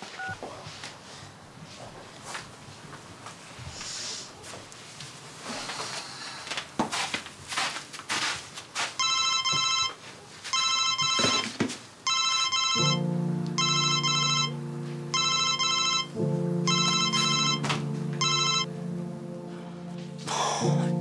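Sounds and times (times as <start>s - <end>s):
phone ringtone double-beep: 9.0s - 10.0s, 10.6s - 11.5s, 12.1s - 13.0s, 13.6s - 16.1s, 16.7s - 18.7s
background music chords: 12.8s - 21.0s.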